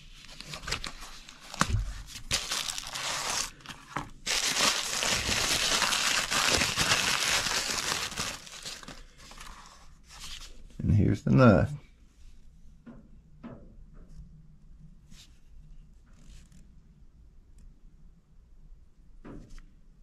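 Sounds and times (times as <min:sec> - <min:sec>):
paper crinkling and rustling: 0:00.0 - 0:10.6.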